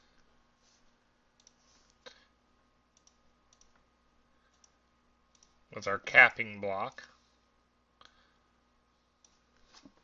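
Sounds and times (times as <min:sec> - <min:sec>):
faint computer mouse clicks: 0:01.4 - 0:02.0, 0:03.0 - 0:03.8, 0:04.5 - 0:05.6.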